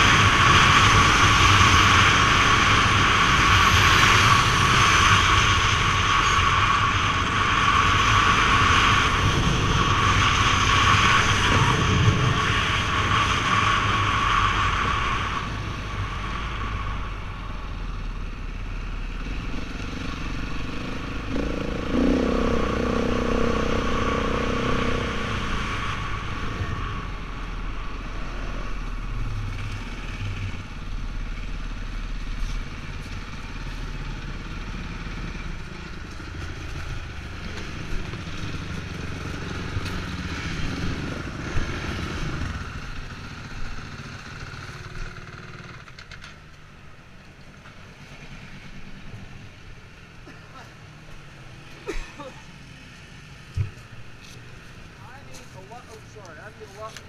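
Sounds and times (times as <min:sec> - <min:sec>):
wind rushing over microphone: 0:00.0 - 0:17.8
off-road vehicle engine running: 0:00.0 - 0:57.0.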